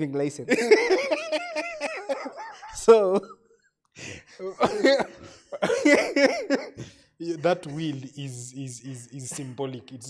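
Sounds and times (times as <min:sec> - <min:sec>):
men laughing: 0:00.5 - 0:03.3, 0:04.3 - 0:07.9.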